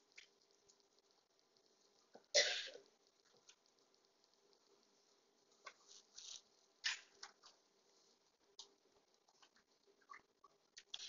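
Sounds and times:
person coughing: 0:02.4 - 0:02.8.

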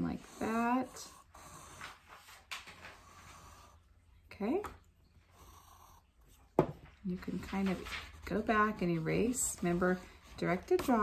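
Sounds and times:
pencil scratching on paper: 0:00.0 - 0:03.9, 0:07.4 - 0:11.0.

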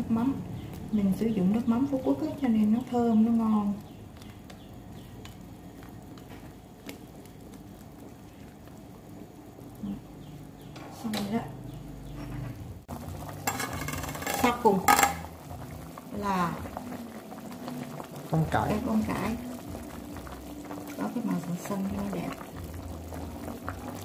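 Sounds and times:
soup simmering in a pot: 0:00.0 - 0:24.0
utensils stirring and knocking pot: 0:12.1 - 0:15.4.

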